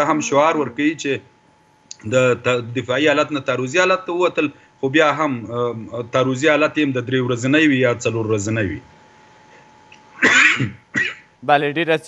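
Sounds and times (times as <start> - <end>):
man coughing: 10.2 - 11.4.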